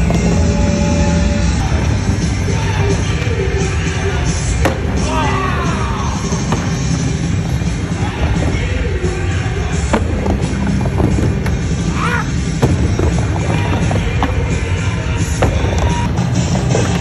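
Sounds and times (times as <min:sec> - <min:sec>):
loud music: 0:00.0 - 0:17.0
skateboard wheels rolling on ramp: 0:00.0 - 0:17.0.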